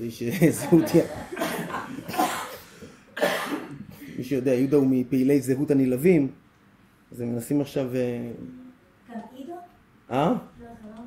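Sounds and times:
person coughing: 1.3s - 4.2s.

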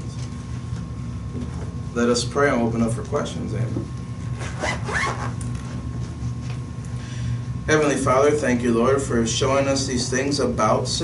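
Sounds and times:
steady low hum: 0.0s - 11.0s
zipper being pulled: 4.3s - 5.6s.

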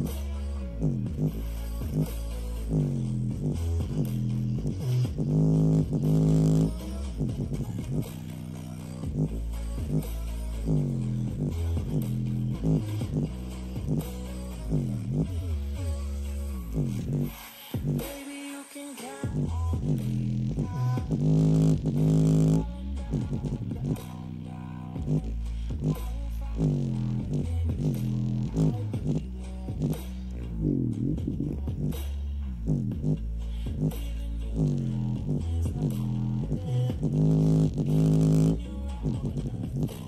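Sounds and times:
low steady rumble: 0.0s - 18.0s, 19.3s - 40.0s
bass-boosted music from speaker: 0.0s - 40.0s.

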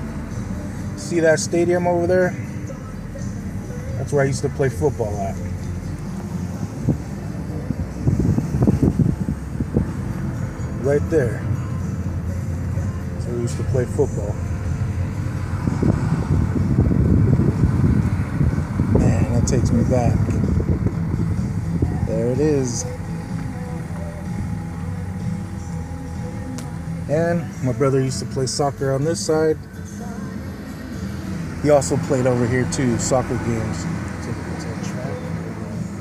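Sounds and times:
car driving rumble: 0.0s - 36.0s
music playing: 0.0s - 36.0s.

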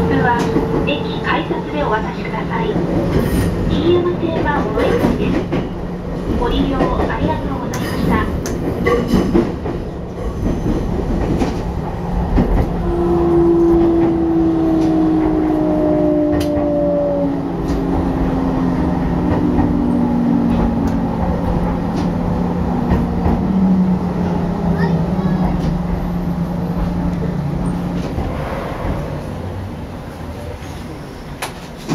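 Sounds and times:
train running noise: 0.0s - 31.9s.

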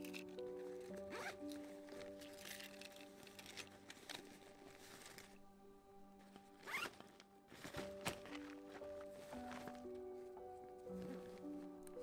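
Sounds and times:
backpack being handled: 0.1s - 5.4s, 6.2s - 12.0s
backpack zipper zipping: 6.7s - 6.9s.

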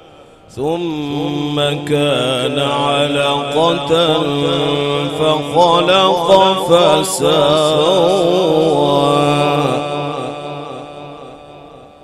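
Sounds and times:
man reciting melodically: 0.0s - 11.3s.

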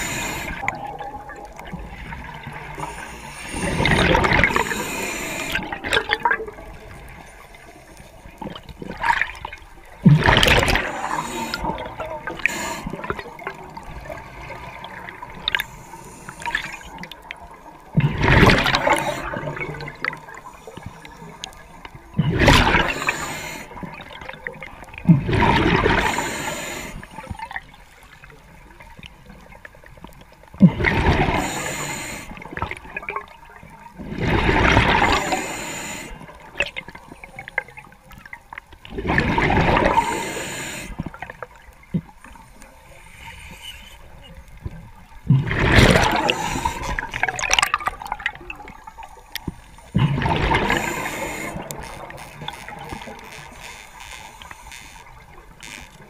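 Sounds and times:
exhaled breath bubbling underwater: 0.0s - 1.4s, 2.2s - 6.4s, 10.1s - 13.8s, 18.0s - 21.0s, 22.2s - 24.4s, 30.7s - 33.2s, 34.0s - 36.7s, 38.9s - 41.3s, 45.3s - 49.1s, 49.7s - 52.8s.

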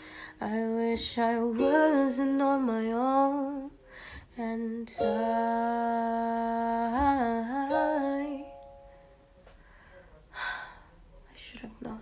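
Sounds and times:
woman gasping breath: 3.8s - 4.3s.

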